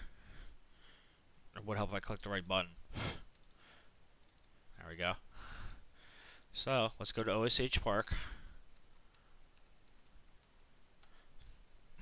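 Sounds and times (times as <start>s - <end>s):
computer keyboard typing: 3.3s - 3.6s, 4.2s - 4.6s, 8.7s - 11.2s.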